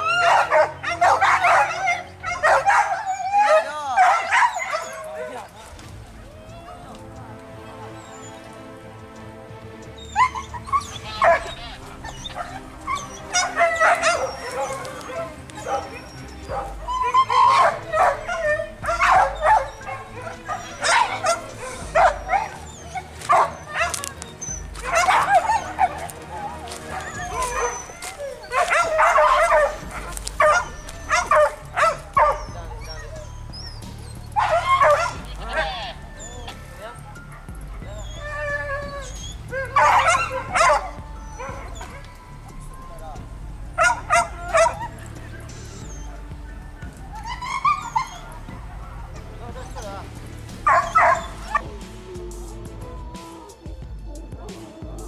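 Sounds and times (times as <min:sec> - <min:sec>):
dogs barking and yelping: 0:00.0 - 0:55.0
faint background music: 0:00.0 - 0:55.0
men shouting: 0:00.0 - 0:55.0.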